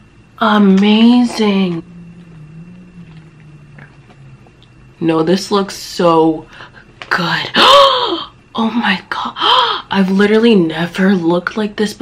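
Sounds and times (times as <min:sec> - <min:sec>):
woman humming low: 0:01.3 - 0:05.0.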